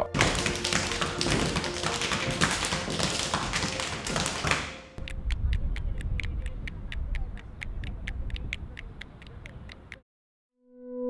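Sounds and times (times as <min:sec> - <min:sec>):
shoes tapping on wooden floor: 0:00.0 - 0:05.0
sharp clicks: 0:05.0 - 0:10.0.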